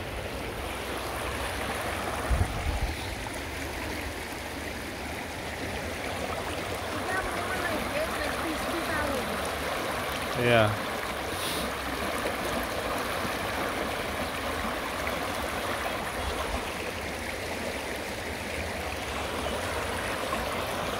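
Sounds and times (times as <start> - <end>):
water rushing over rocks: 0.0 - 20.9.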